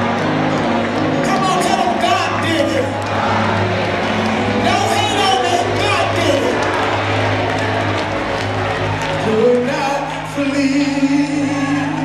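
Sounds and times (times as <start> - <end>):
crowd noise: 0.0 - 12.0
live gospel band music: 0.0 - 12.0.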